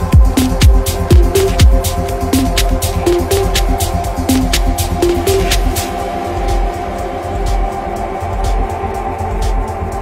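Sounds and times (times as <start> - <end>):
downtempo electronic music: 0.0 - 10.0.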